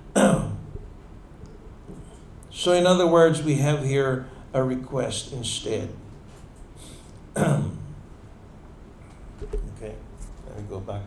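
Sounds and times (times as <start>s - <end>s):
man clearing his throat: 0.0s - 0.7s, 7.4s - 8.0s.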